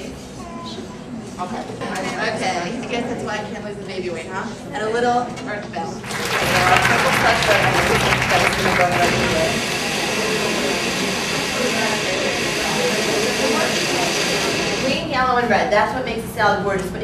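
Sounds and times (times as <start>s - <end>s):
blender running: 6.1s - 15.1s.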